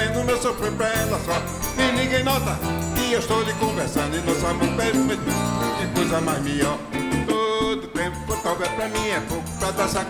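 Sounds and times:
accordion: 0.0 - 10.0
bass drum: 0.0 - 10.0
drums: 0.0 - 10.0
guitars: 0.0 - 10.0.

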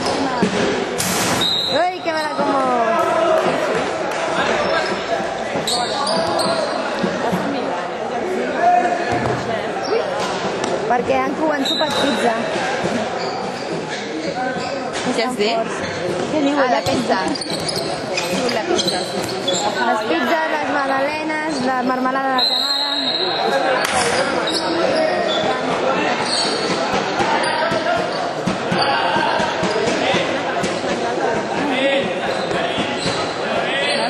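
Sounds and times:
ball bouncing on hard court: 16.1 - 19.6.

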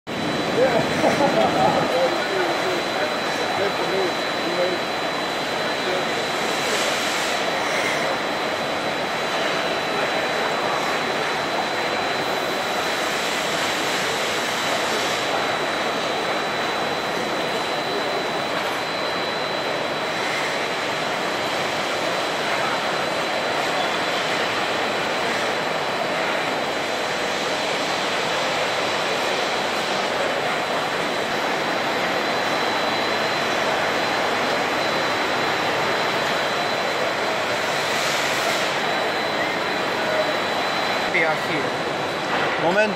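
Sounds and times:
machinery and air noise: 0.1 - 42.9
thin high whine: 0.1 - 42.9.

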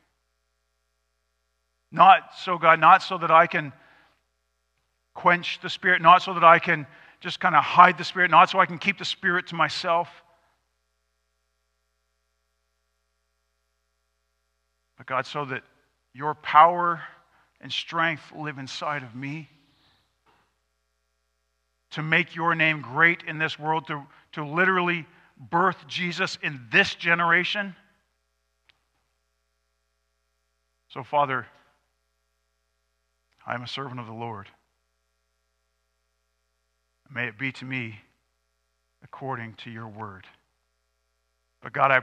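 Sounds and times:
faint electrical hum: 0.0 - 42.0
man speaking: 2.0 - 3.8, 5.2 - 10.2, 15.0 - 15.6, 16.2 - 19.7, 21.9 - 27.8, 30.9 - 31.6, 33.4 - 34.6, 37.1 - 38.1, 39.0 - 40.4, 41.6 - 42.0.

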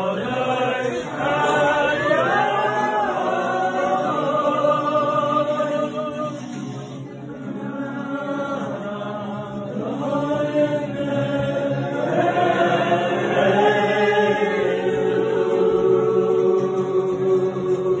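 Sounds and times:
men singing in a choir: 0.0 - 18.0.

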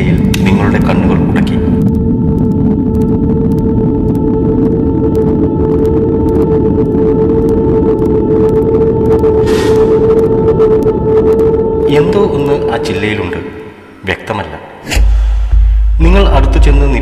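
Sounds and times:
low rumble: 0.0 - 14.1, 14.8 - 17.0
ambient droning tone: 0.0 - 17.0.

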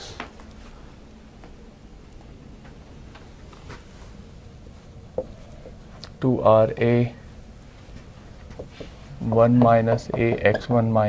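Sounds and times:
marker tapping on whiteboard: 8.5 - 8.9.

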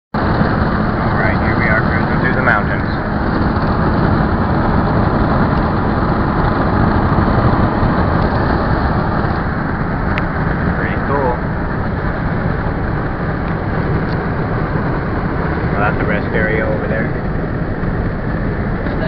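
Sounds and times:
road and wind noise in car: 0.1 - 19.0.

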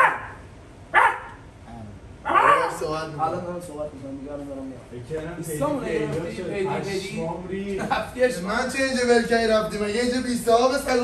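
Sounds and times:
dog barking sharply: 0.0 - 1.4, 2.3 - 2.8.

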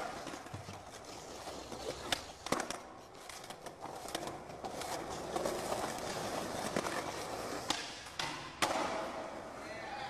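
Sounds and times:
skateboard wheels rolling on concrete: 0.0 - 9.6.

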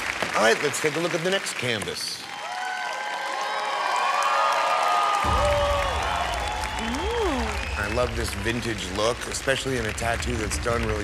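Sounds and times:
deep bass: 5.3 - 11.0.

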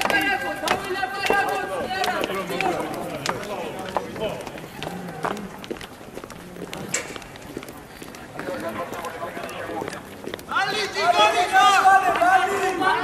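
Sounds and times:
raised voices calling out: 8.5 - 13.0.

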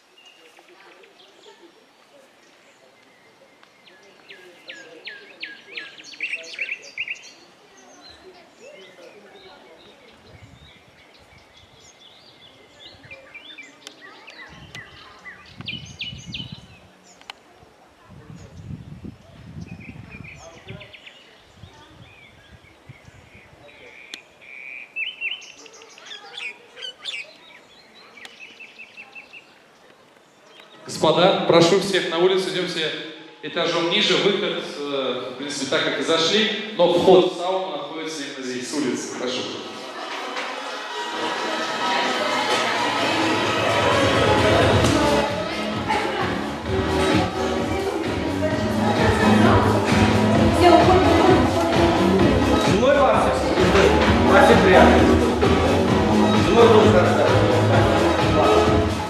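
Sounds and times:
songbird singing: 0.0 - 35.5.

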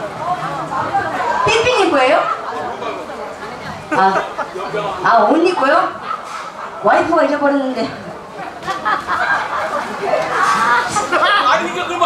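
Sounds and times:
people talking: 0.0 - 6.0, 6.8 - 12.0.

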